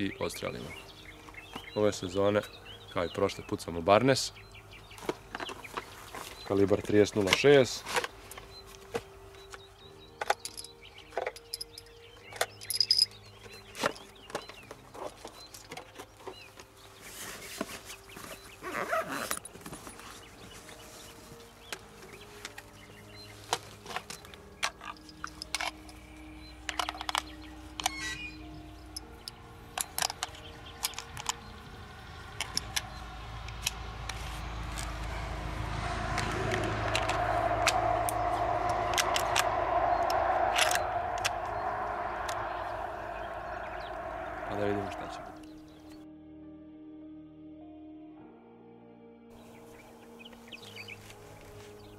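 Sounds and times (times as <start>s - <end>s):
background music: 0.0s - 51.9s.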